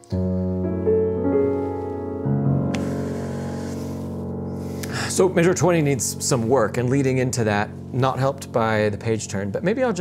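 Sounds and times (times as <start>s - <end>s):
grand piano chord ringing: 0.0s - 10.0s.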